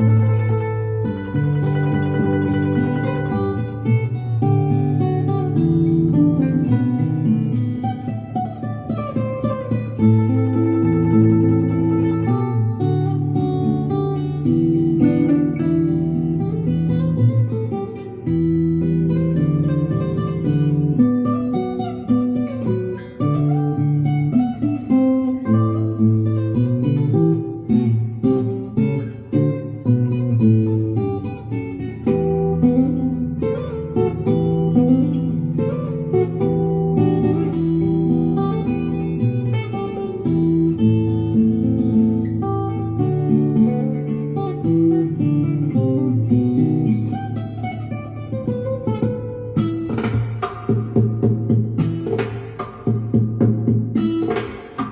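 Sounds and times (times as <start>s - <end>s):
plucked zither melody: 0.0s - 6.0s.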